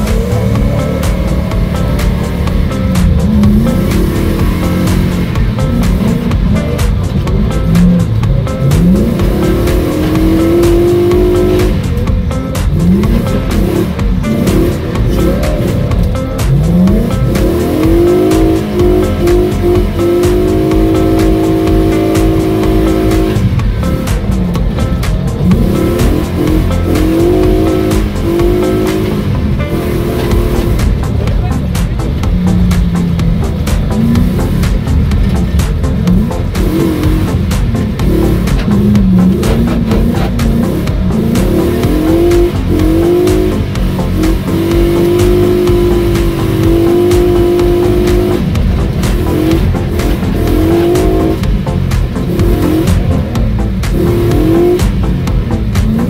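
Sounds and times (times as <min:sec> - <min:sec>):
car engine revving: 0:00.0 - 0:56.0.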